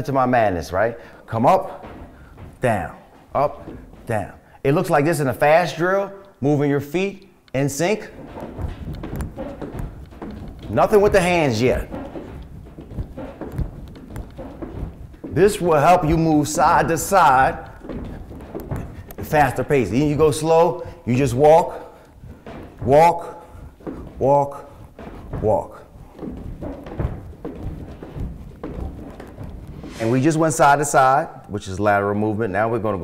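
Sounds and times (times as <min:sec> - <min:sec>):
feet thudding on step platform: 0:00.0 - 0:32.0.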